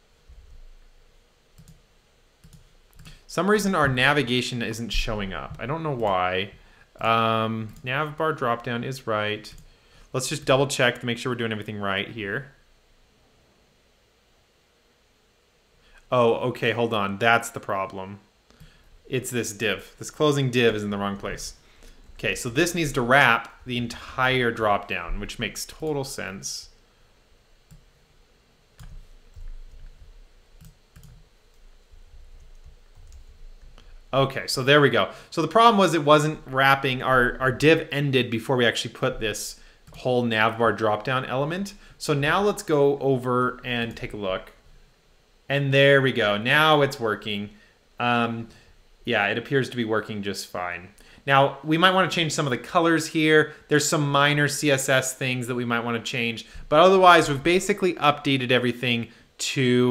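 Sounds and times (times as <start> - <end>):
computer clicks: 1.6 - 1.8, 2.4 - 3.2, 28.8 - 30.0, 30.6 - 31.7, 32.4 - 33.7.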